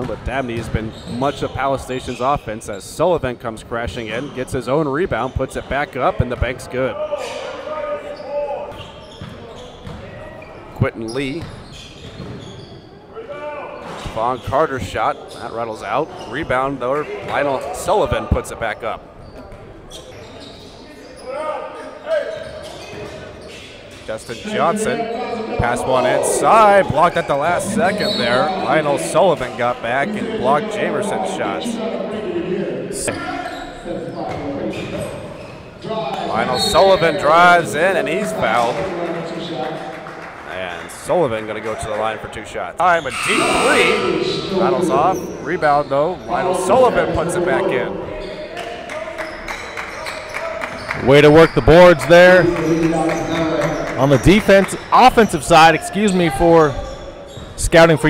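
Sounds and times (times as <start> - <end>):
players shouting: 43.0 - 45.5.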